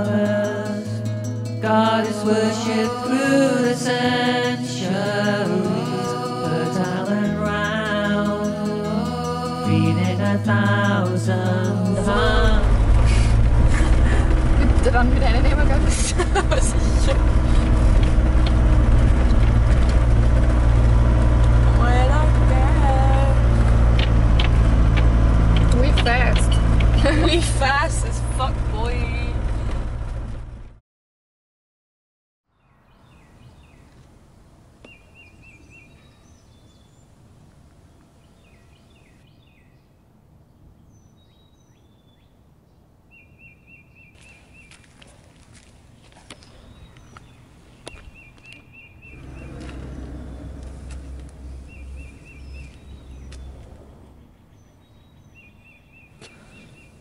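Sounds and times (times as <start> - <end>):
van engine and tyre rumble: 0.0 - 30.8, 32.9 - 42.2, 42.8 - 57.0
faint songbirds chirping: 32.5 - 57.0.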